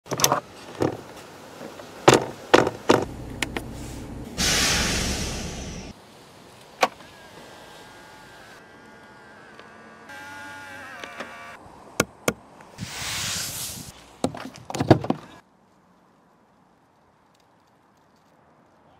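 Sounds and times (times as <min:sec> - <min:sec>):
loud rushing whirr: 0:04.3 - 0:06.0.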